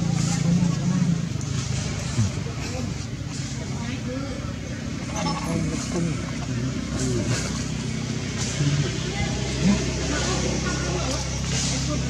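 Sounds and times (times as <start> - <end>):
indistinct voices talking: 0.0 - 12.0
vehicle engine idling: 0.0 - 12.0.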